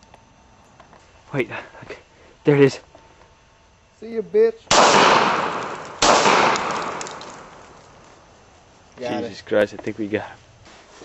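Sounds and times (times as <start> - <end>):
loud gunshot: 4.7 - 7.8.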